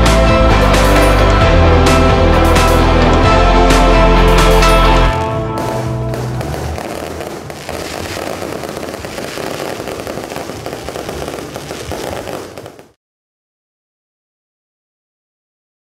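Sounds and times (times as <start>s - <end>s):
music track: 0.0s - 8.8s
fireworks crackling: 5.1s - 13.0s.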